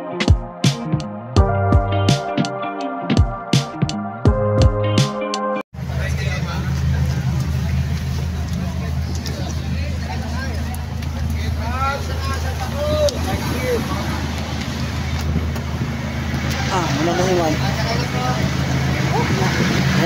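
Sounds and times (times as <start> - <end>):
electronic music with a beat: 0.0 - 5.6.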